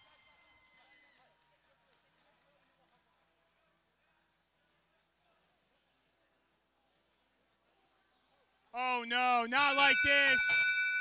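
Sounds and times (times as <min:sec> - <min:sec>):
faint high steady tone: 0:08.8 - 0:11.0.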